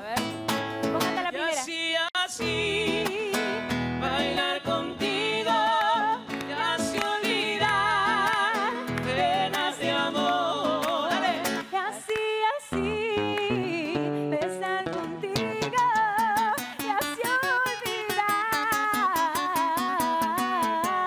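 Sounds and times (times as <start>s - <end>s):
acoustic guitar: 0.0s - 21.0s
man singing with vibrato: 0.0s - 21.0s.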